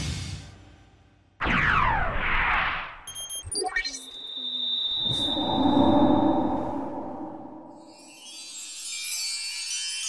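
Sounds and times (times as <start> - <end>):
steady high-pitched tone: 3.4 - 9.0.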